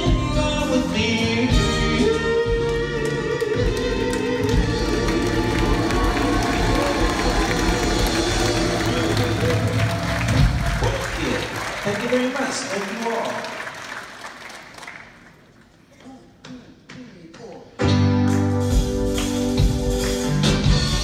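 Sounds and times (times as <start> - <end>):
live soul band playing: 0.0 - 10.7, 17.8 - 21.0
audience applause: 2.6 - 15.9.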